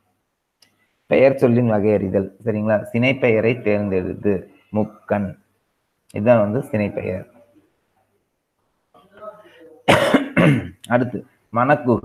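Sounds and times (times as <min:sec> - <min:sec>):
man's voiced sounds: 0:06.1 - 0:07.4
man coughing: 0:09.8 - 0:10.8.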